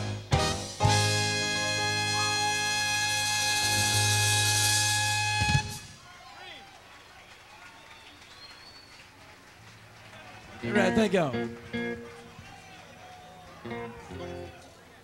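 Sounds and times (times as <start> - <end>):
live band holding a chord: 0.0 - 5.9.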